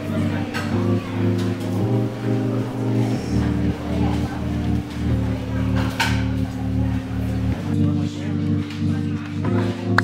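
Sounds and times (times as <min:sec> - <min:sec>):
background music with bass chords: 0:00.0 - 0:10.0.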